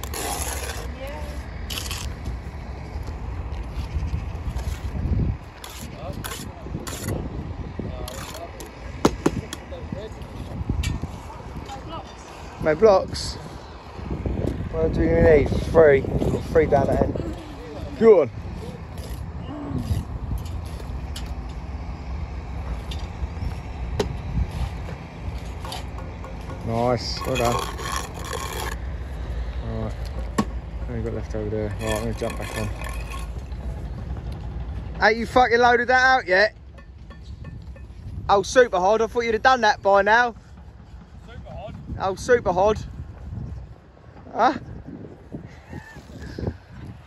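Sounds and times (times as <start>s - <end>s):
trowel scraping mortar: 0.0s - 2.3s, 3.7s - 7.2s, 8.0s - 8.8s, 18.6s - 21.4s, 25.4s - 28.9s, 31.6s - 33.6s.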